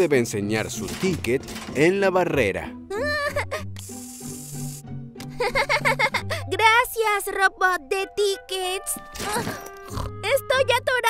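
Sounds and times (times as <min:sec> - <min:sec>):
light background music: 0:00.0 - 0:11.0
ticket machine hiss: 0:03.8 - 0:04.9.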